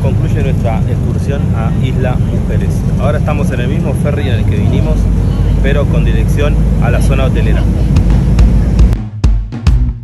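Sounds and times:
man talking: 0.0 - 7.8
boat engine low rumble: 0.0 - 9.0.

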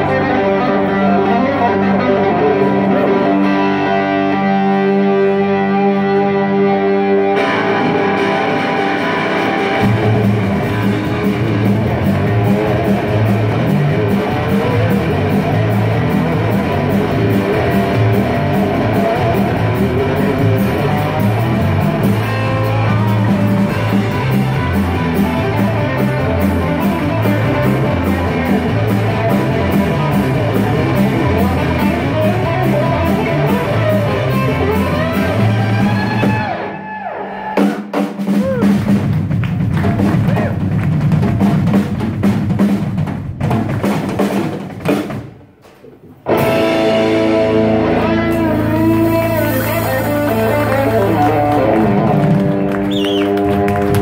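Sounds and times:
electric guitars: 0.0 - 42.2, 45.6 - 54.0
live rock band playing: 0.0 - 54.0
drum kit beat: 7.4 - 36.7, 37.5 - 54.0.

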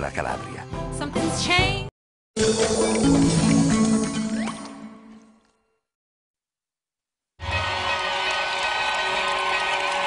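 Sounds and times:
theme music: 0.0 - 5.3, 7.4 - 10.0
stadium crowd cheering: 7.4 - 10.0.

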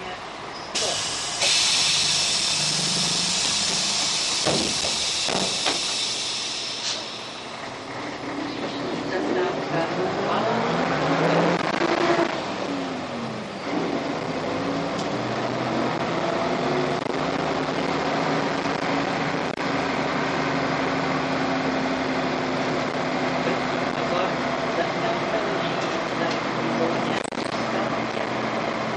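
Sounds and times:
bus diesel engine pulling uphill: 0.0 - 28.9.

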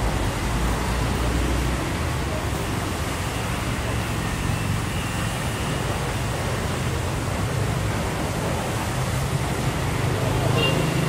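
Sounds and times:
street traffic hum: 0.0 - 11.0.

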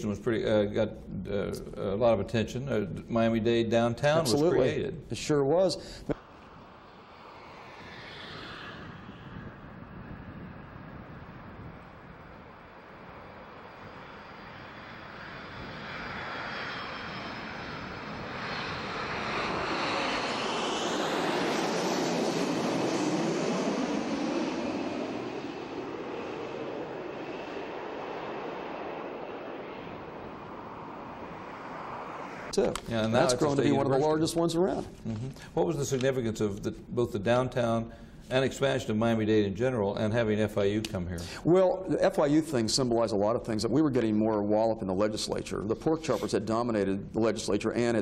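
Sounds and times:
aircraft passing overhead: 0.0 - 34.8, 35.4 - 48.0.

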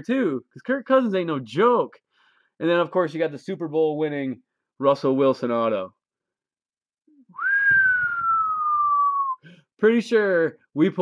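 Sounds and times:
man whistling a sliding note: 7.3 - 9.4.

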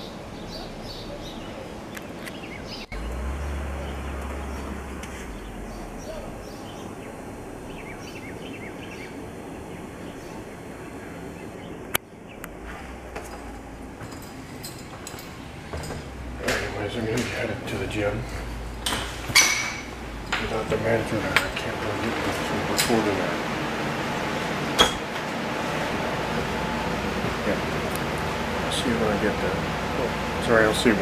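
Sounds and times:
birds chirping: 0.0 - 31.0
steady low rumble: 2.5 - 31.0.

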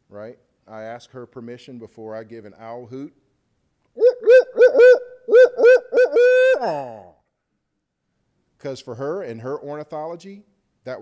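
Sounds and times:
man imitating owl hoots: 4.0 - 7.2.

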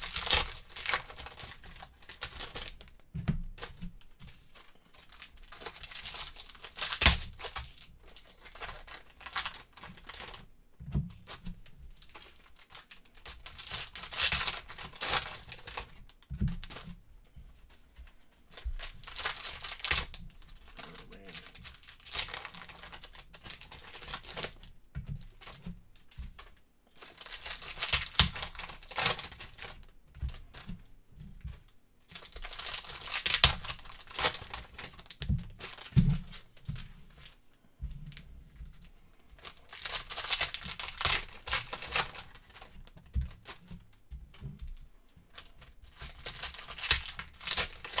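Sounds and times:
foil wrappers tearing and crinkling: 0.0 - 3.0, 3.6 - 10.4, 11.2 - 16.9, 18.5 - 24.7, 25.3 - 25.6, 26.4 - 30.7, 32.1 - 37.4, 39.4 - 43.8, 45.3 - 48.0.

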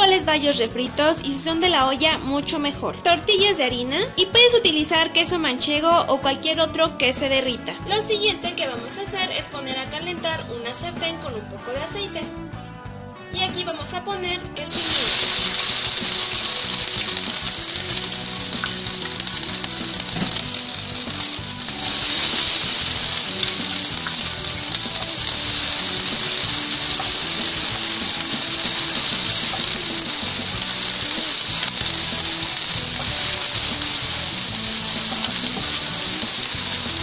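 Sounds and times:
background music: 0.0 - 37.0
peppers sizzling in hot oil: 14.7 - 37.0.

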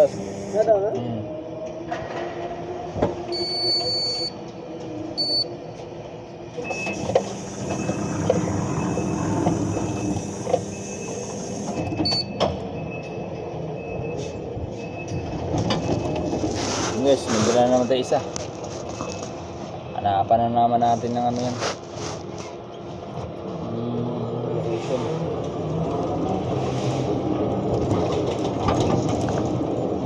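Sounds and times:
lift truck hum: 0.0 - 20.3
faint high beep: 3.3 - 4.4, 5.2 - 5.5.

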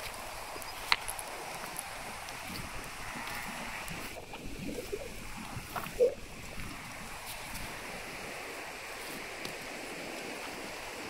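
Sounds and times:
creek water running over stones: 0.0 - 11.0
wind on microphone: 0.0 - 11.0.

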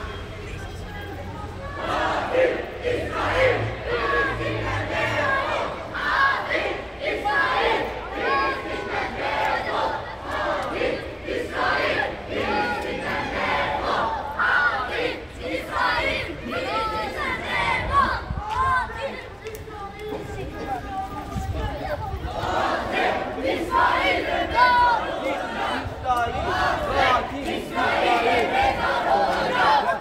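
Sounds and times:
crowd shouting together: 1.4 - 19.3, 20.8 - 30.0.

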